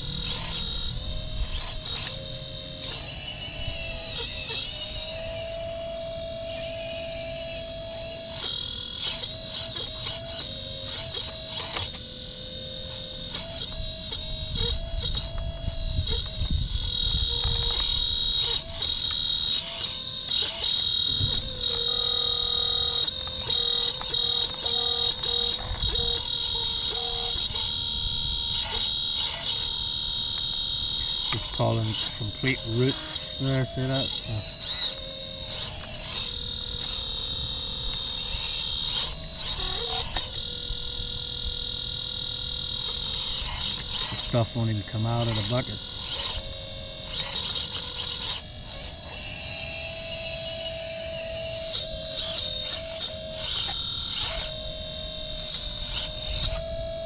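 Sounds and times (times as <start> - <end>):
hydraulic pump whining: 0.0 - 57.0.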